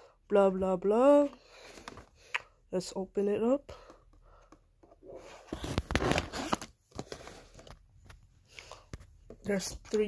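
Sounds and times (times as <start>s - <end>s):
cardboard rustling and scraping: 4.8s - 8.3s.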